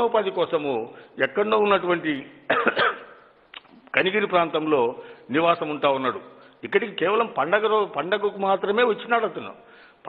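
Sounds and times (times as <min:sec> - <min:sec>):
man clearing his throat: 0:02.5 - 0:03.2.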